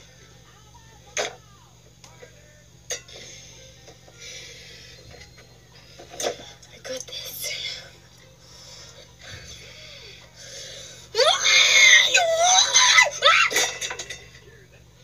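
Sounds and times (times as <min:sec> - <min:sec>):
girl high-pitched vocalisation: 0:11.2 - 0:13.6.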